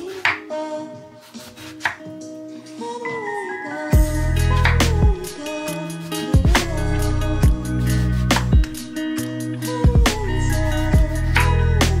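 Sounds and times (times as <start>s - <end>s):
knife chopping on wooden board: 1.4s - 2.1s.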